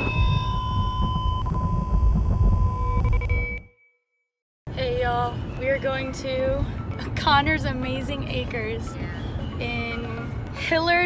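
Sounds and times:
deep rumble: 0.0 - 3.6
electronic tones: 0.0 - 3.9
high ringing tone: 0.0 - 4.1.

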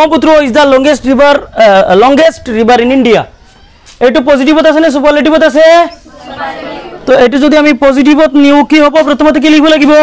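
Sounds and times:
voices speaking: 3.3 - 7.8
murmur of voices: 5.4 - 7.8.

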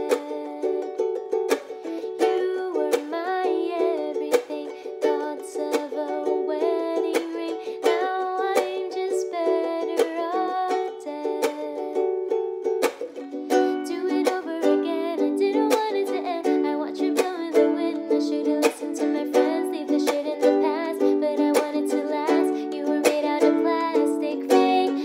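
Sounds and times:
woman singing softly: 0.0 - 1.0, 2.0 - 12.1, 13.5 - 25.0
ukulele strumming chords: 0.0 - 25.0.

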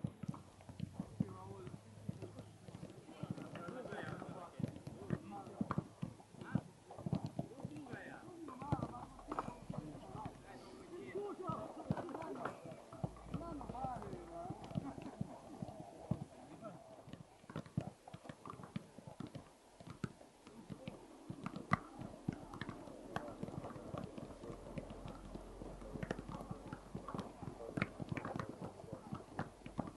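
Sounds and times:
footballs being kicked: 0.0 - 29.9
people talking: 1.0 - 5.8, 7.5 - 15.7, 20.5 - 29.4.

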